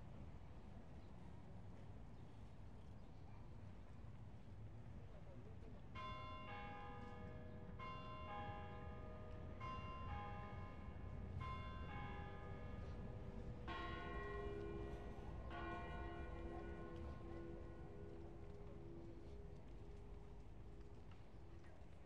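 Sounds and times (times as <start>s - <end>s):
church bells ringing: 6.0s - 19.2s.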